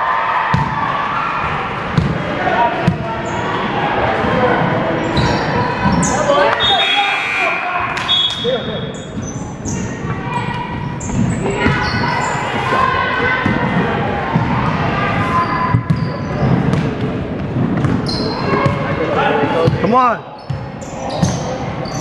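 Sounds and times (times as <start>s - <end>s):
indistinct voices: 0.7s - 17.3s.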